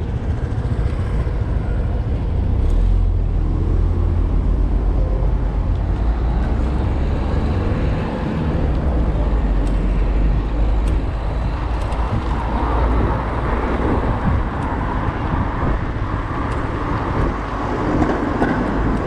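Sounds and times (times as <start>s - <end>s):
road traffic: 0.0s - 19.0s
wind rushing over microphone: 0.0s - 19.0s.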